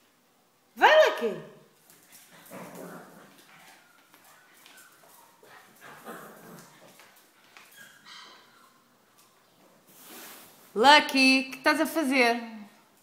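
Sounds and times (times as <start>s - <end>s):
dogs whimpering and yipping: 7.6s - 8.9s.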